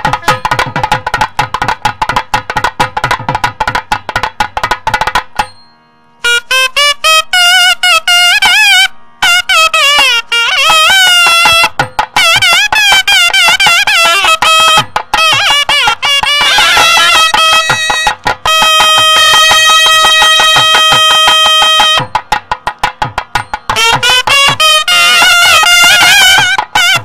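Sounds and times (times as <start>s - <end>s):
nadaswaram melody: 0.0s - 27.0s
thavil drum strokes: 0.0s - 27.0s.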